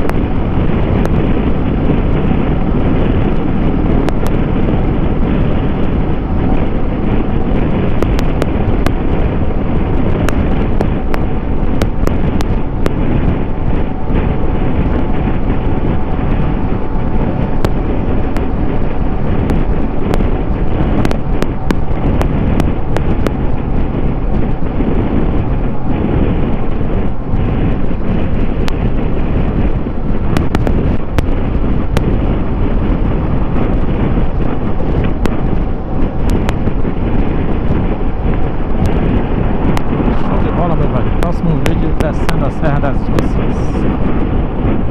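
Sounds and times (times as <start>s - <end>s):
motorcycle engine cruising: 0.0s - 44.9s
wind buffeting microphone: 0.0s - 44.9s.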